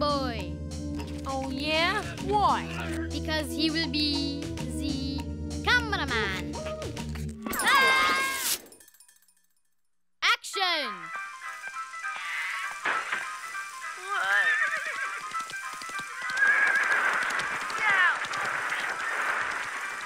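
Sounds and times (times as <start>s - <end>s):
background music: 0.0s - 8.6s, 10.4s - 18.3s
cartoon horse whinnying: 14.1s - 15.3s, 16.2s - 18.2s.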